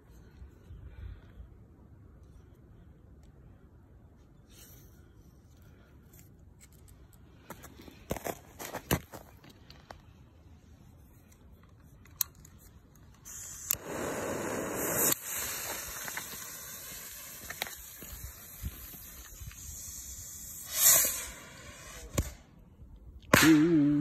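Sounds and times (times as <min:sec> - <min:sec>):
rocket motor hissing and sputtering: 0:13.2 - 0:22.3.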